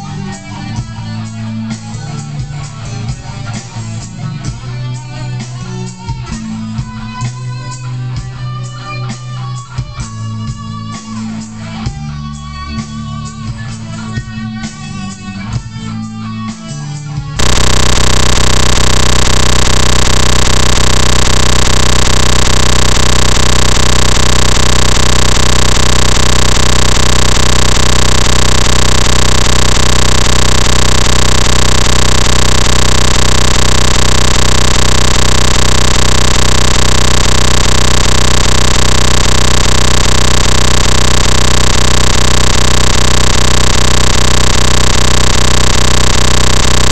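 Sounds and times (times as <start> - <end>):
faint rapid ticking: 17.4 - 46.9
loud buzzing drone: 17.4 - 46.9.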